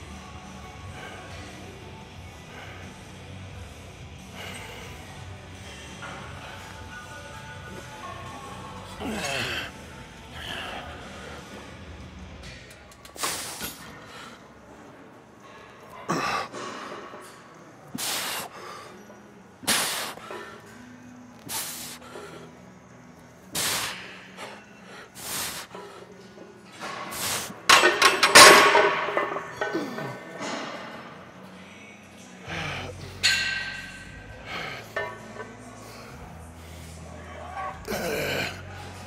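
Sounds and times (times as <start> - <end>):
faint background music: 0.0 - 39.0
strained breathing: 15.4 - 27.7, 32.3 - 33.4, 34.1 - 37.1
sharp forceful breaths: 17.9 - 22.8, 23.4 - 27.7.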